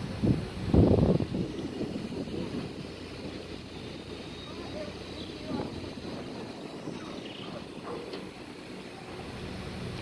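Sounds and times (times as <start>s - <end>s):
boat engine low rumble: 0.0s - 10.0s.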